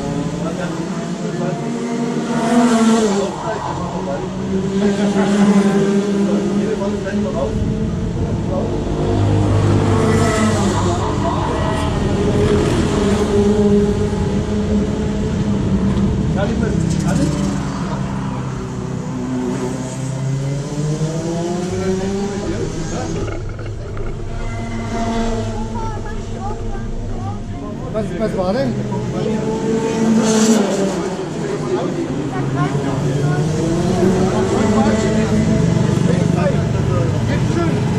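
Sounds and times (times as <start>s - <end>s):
go-kart engine running: 0.0s - 37.9s
people talking: 25.5s - 37.9s.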